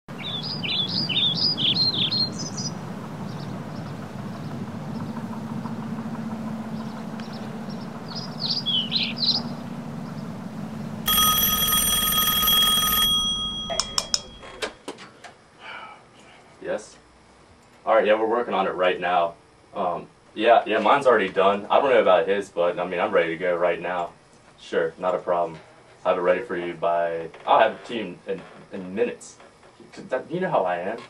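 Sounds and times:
birds chirping: 0.1s - 11.1s
steady outdoor hum: 0.1s - 31.0s
desk telephone ringing: 11.0s - 14.8s
handset handling clicks: 13.6s - 14.7s.

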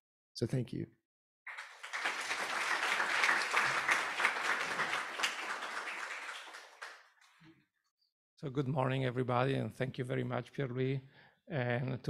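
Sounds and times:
audience applauding: 1.5s - 7.3s.

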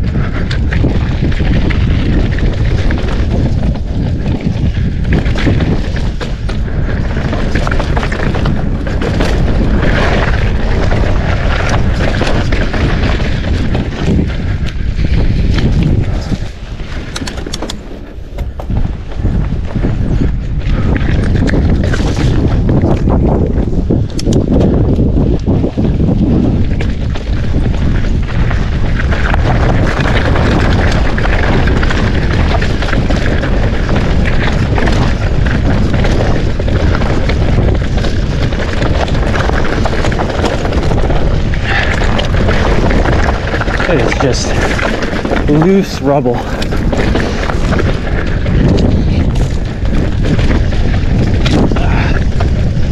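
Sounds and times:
bike rattling over rock: 0.0s - 52.9s
wind buffeting microphone: 0.0s - 52.9s.

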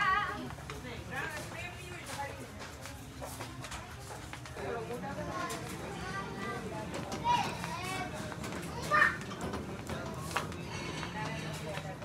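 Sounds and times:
shoppers chatter: 0.0s - 12.0s
children's voices: 5.2s - 9.5s.

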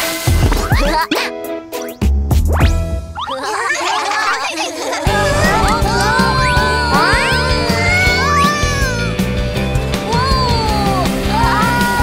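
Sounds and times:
cartoon background music: 0.0s - 12.0s
wavering cartoon character cry: 3.3s - 9.2s.

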